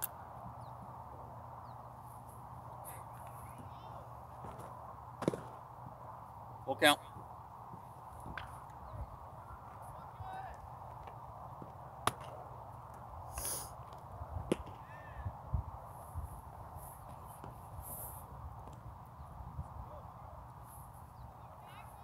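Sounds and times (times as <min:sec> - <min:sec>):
faint distant voices: 0:00.2 - 0:16.0, 0:19.1 - 0:22.0
sharp smack: 0:05.2 - 0:05.5.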